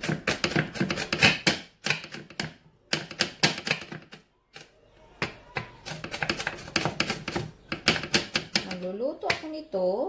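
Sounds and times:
knife chopping on wooden board: 0.0 - 4.2, 5.2 - 9.4.

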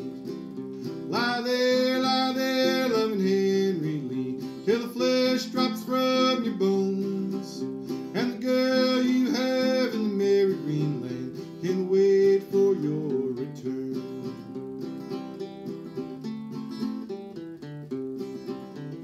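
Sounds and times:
acoustic guitar playing: 0.0 - 19.0
man singing: 0.9 - 14.6.

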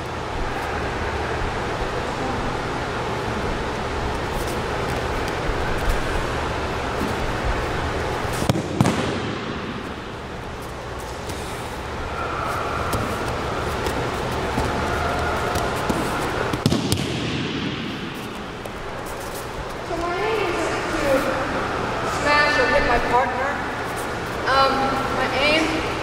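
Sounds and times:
room noise hum: 0.0 - 26.0.

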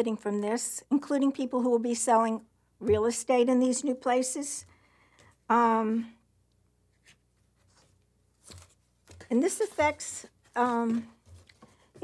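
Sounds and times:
paper rustling: 7.0 - 12.0.

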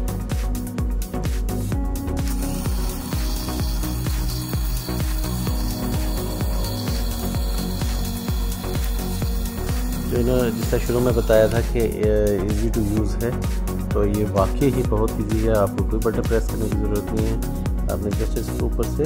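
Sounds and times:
background music with steady beat: 0.0 - 19.0
coffee grinder whirring: 2.2 - 11.8.

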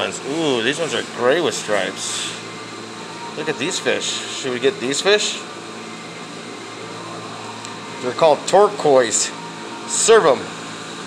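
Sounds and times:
machine hum with hiss: 0.0 - 11.0.

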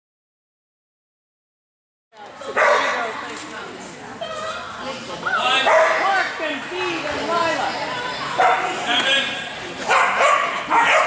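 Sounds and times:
dog barking and yipping: 9.9 - 11.0.

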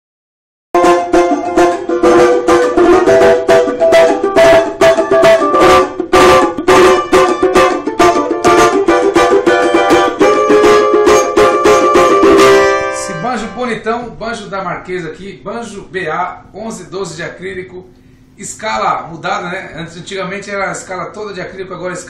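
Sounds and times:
banjo strummed: 0.8 - 13.8.

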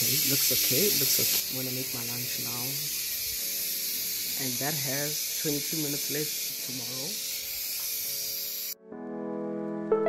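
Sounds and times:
pressure cooker steam hissing: 0.0 - 8.8.

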